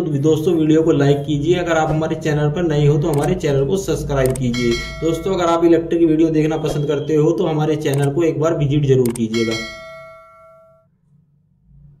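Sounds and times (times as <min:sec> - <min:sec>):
bell-like chime: 0:04.6 - 0:05.5, 0:09.4 - 0:10.9.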